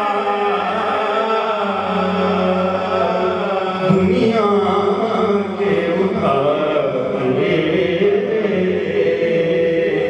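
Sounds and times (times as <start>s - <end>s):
man singing devotional chant: 0.0s - 10.0s.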